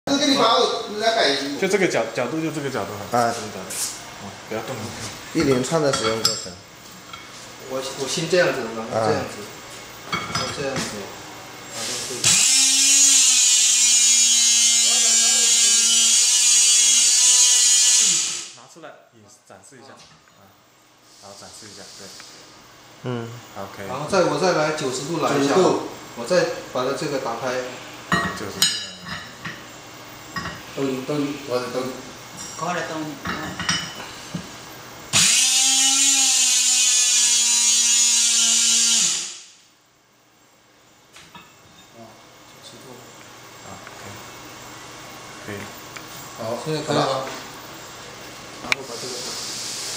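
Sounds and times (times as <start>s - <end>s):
electric motor whining: 12.3s - 18.6s, 35.2s - 39.4s.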